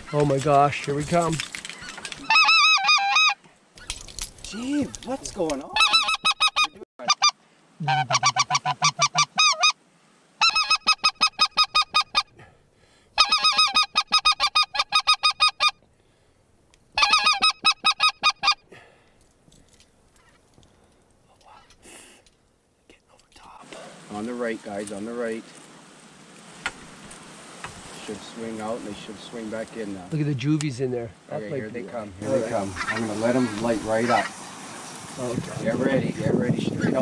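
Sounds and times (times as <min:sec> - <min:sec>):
geese honking: 0:01.8 - 0:03.4, 0:05.6 - 0:09.8, 0:10.4 - 0:12.3, 0:13.2 - 0:15.8, 0:17.0 - 0:18.6, 0:32.2 - 0:35.0.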